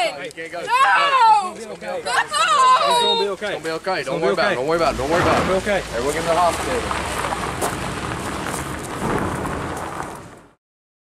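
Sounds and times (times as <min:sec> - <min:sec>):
wind buffeting microphone: 0:04.7 - 0:10.5.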